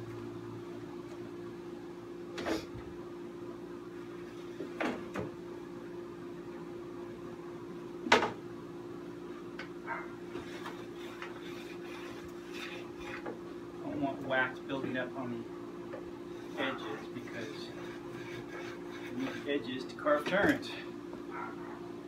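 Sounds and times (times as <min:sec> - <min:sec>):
low background hum: 0:00.0 - 0:22.0
scraper on ski steel edge: 0:10.4 - 0:13.2, 0:16.4 - 0:19.6.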